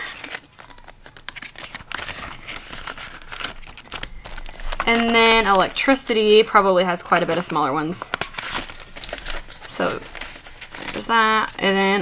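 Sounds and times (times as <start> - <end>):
banknotes rustling: 0.0 - 12.0.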